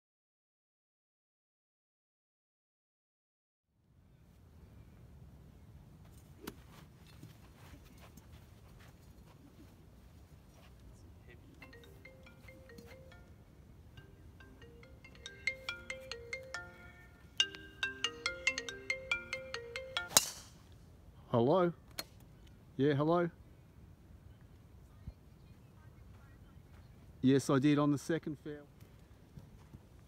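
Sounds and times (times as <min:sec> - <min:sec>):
mobile phone ringtone: 0:11.6 - 0:13.4, 0:14.0 - 0:20.2.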